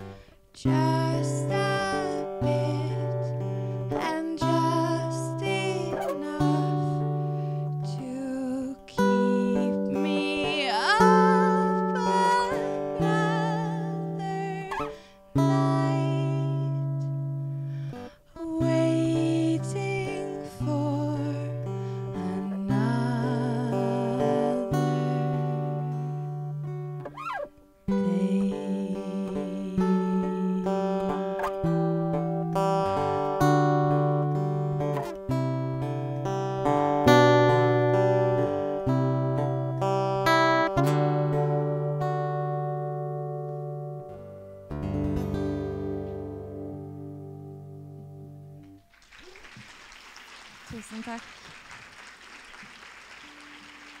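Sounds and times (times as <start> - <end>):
woman singing: 0.0 - 17.2, 18.2 - 26.1, 27.9 - 31.3
acoustic guitar strumming: 0.0 - 49.0.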